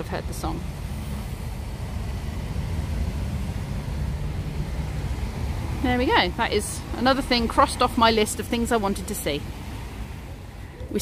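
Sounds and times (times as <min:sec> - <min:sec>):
road traffic engine rumble: 0:00.0 - 0:11.0.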